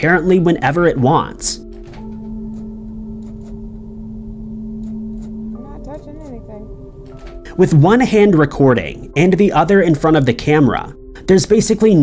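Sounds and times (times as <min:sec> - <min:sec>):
door lock actuator clicking: 0:01.6 - 0:04.0, 0:04.7 - 0:05.5, 0:07.0 - 0:07.6
low droning tone: 0:02.1 - 0:07.2.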